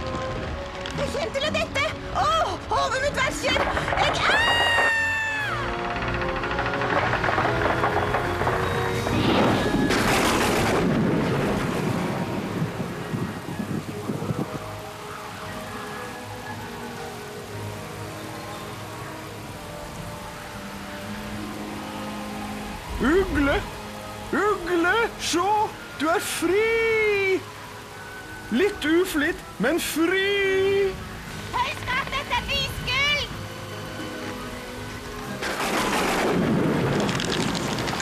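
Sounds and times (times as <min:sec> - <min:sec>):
dramatic background music: 0:00.0 - 0:38.0
thunder crash: 0:06.0 - 0:14.5, 0:35.4 - 0:38.0
high pitched wail: 0:09.0 - 0:10.4.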